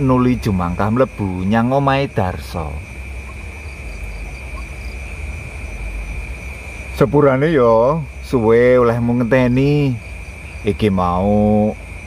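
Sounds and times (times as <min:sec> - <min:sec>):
crickets trilling: 0:00.0 - 0:12.0
low steady hum: 0:00.0 - 0:12.0.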